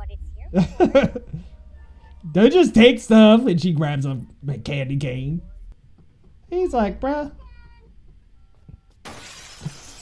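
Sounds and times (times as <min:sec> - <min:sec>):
glass window shattering: 0:09.0 - 0:10.0.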